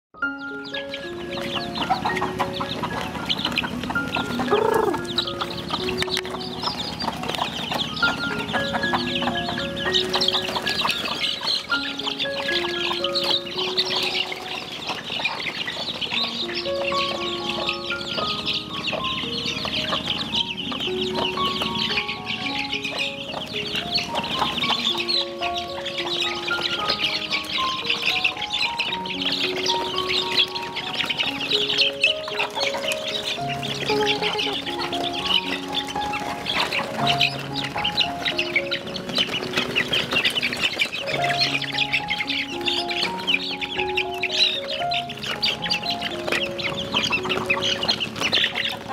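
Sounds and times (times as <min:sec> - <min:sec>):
background music of held notes: 0:00.2 - 0:48.9
chicks peeping: 0:00.2 - 0:48.9.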